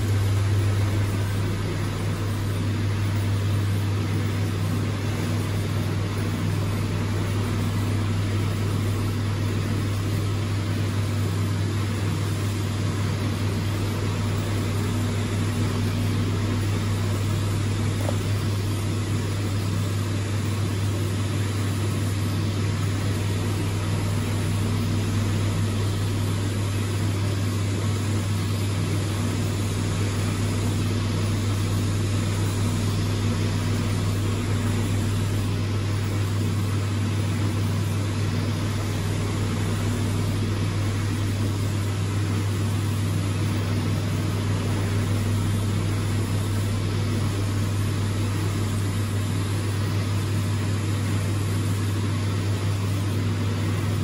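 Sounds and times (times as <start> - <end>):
low machine hum: 0.0 - 54.0.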